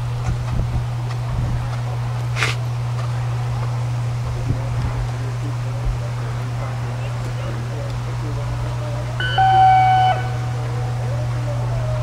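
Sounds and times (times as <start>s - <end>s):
constant low hum: 0.0s - 12.0s
steady electronic tone: 9.2s - 11.1s.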